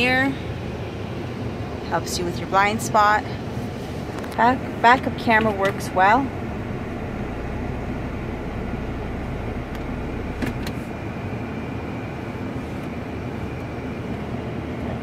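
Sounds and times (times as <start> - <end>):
car engine idling: 0.0 - 15.0
climate control blower: 5.6 - 11.4.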